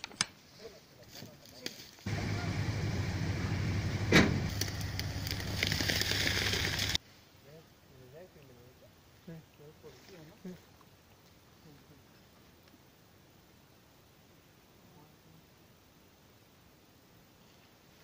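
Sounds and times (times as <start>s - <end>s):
truck engine running: 2.1s - 7.0s.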